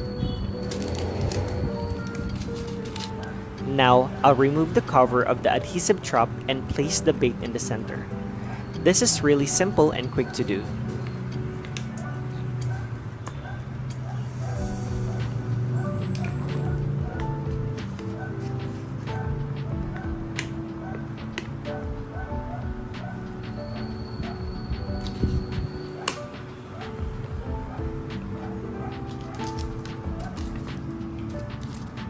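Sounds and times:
background music of held notes: 0:00.0 - 0:32.0.

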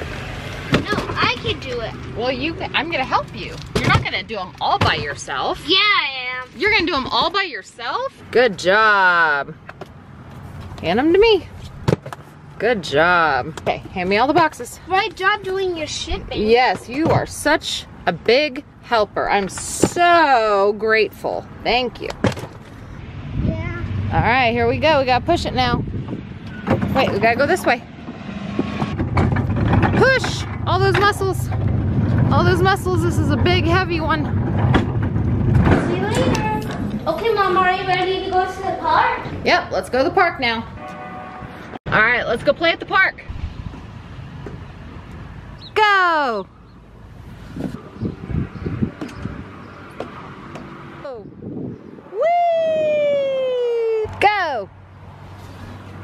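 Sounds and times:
cart wheels rolling on asphalt: 0:26.4 - 0:39.4.

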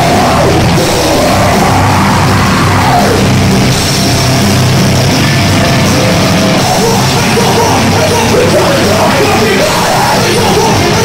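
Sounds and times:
bass guitar: 0:00.0 - 0:11.0
drum kit with crashing cymbals: 0:00.0 - 0:11.0
electric guitar: 0:00.0 - 0:11.0.

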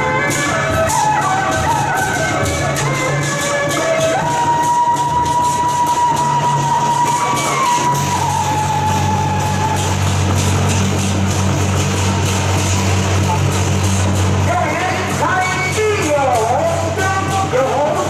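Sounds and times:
quick percussion strokes: 0:00.0 - 0:18.0
wind instrument long high note: 0:00.0 - 0:18.0.

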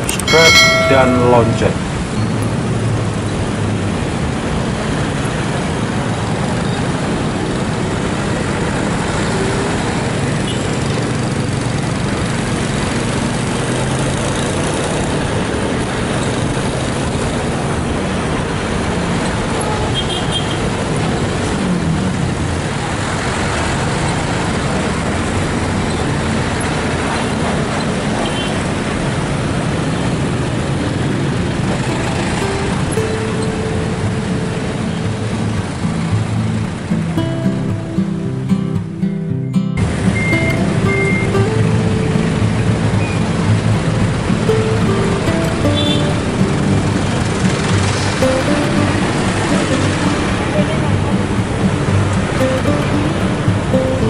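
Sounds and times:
passing vehicles: 0:00.0 - 0:54.0.

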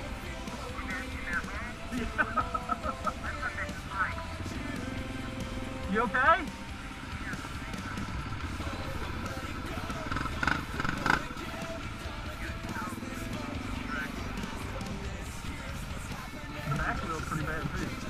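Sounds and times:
background music: 0:00.0 - 0:18.0
motorcycles rumbling slowly: 0:00.0 - 0:18.0.

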